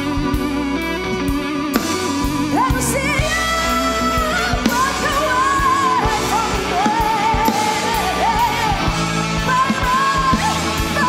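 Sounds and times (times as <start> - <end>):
drums: 0.0 - 11.0
electric guitar: 0.0 - 11.0.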